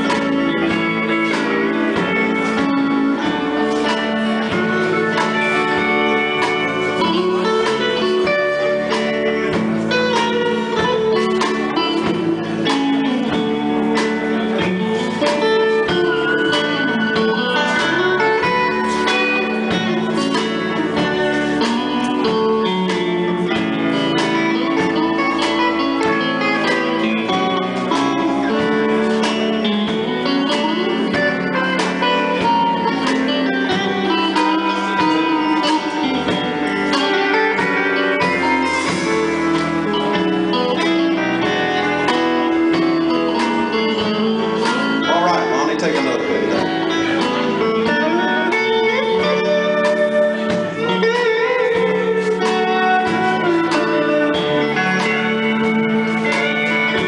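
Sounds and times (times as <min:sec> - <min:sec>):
country band playing: 0:00.0 - 0:57.0.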